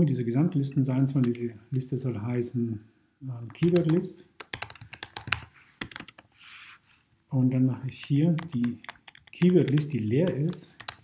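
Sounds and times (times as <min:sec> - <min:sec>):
keyboard key clicks: 0:08.0 - 0:11.0.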